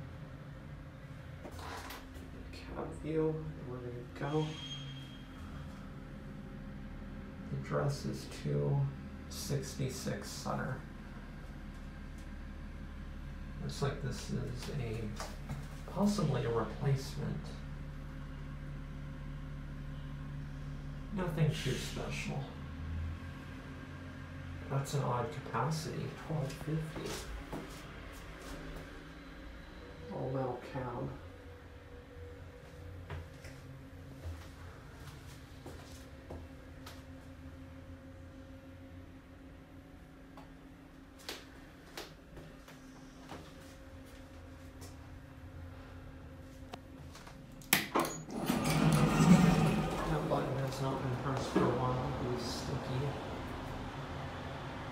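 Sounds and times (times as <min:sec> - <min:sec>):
elevator mechanical hum: 0:00.0 - 0:54.9.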